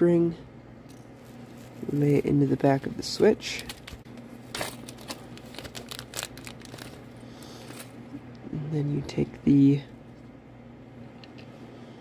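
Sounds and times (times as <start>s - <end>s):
plastic bag crinkling: 0.9s - 8.0s.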